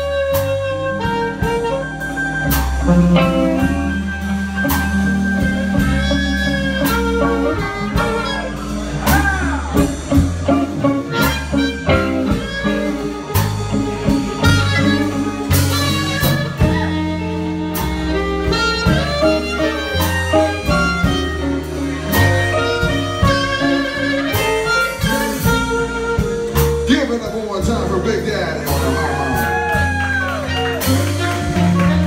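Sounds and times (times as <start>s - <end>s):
blues band playing: 0.0s - 32.0s
harmonica lead: 0.0s - 32.0s.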